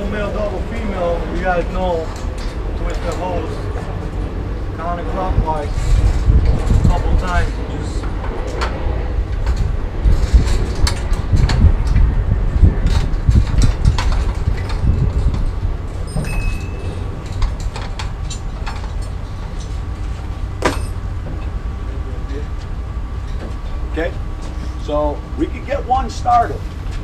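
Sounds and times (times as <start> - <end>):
steady low rumble: 0.0 - 27.0.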